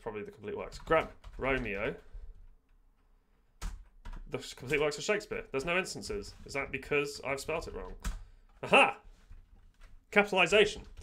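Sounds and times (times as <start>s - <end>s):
computer keyboard typing: 3.6s - 4.8s.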